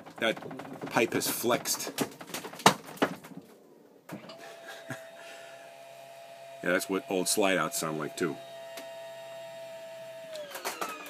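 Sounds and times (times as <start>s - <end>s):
electric motor whining: 4.3s - 11.0s.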